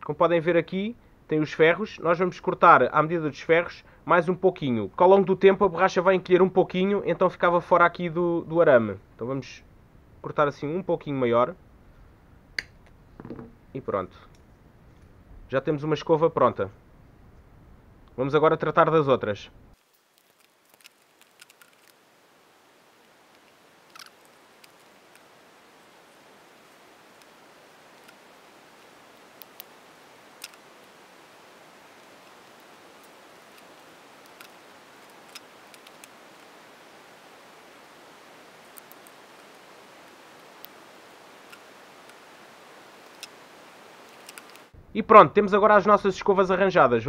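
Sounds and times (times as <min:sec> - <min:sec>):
faint steady hiss: 0:00.0 - 0:47.0
wiper blade parts clicking: 0:44.1 - 0:44.7.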